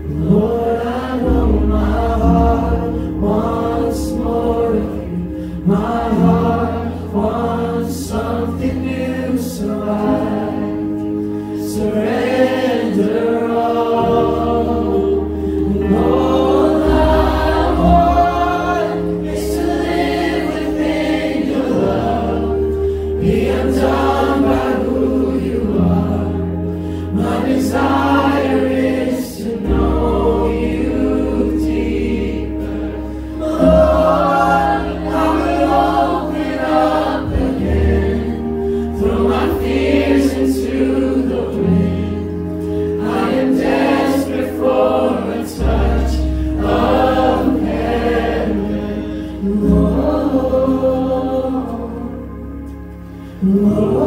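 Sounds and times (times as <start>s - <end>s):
men singing: 0.0s - 10.9s, 11.7s - 26.5s, 33.3s - 42.4s, 43.0s - 52.2s, 53.4s - 54.0s
worship band playing slow song: 0.0s - 54.0s.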